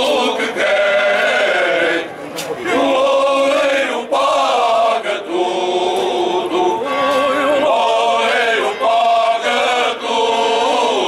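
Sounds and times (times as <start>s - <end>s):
male choir singing unaccompanied: 0.0s - 11.0s.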